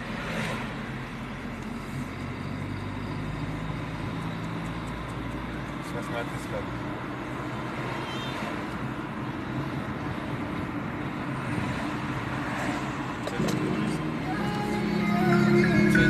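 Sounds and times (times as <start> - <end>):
car road and engine noise: 0.0 - 16.0
music: 13.6 - 16.0.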